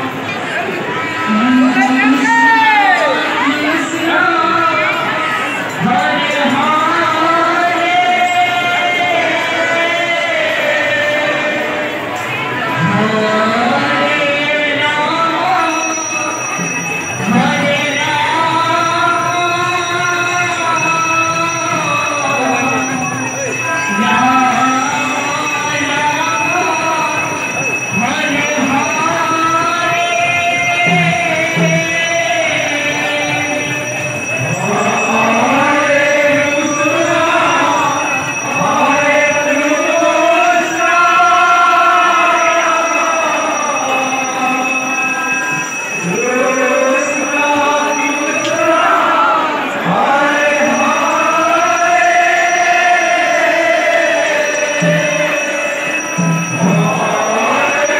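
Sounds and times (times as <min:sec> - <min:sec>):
man singing through loudspeakers: 0:00.0 - 0:57.9.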